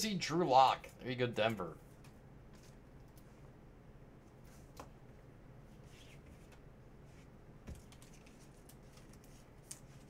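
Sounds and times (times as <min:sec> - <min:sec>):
card and plastic sleeve handling: 0:07.8 - 0:10.0.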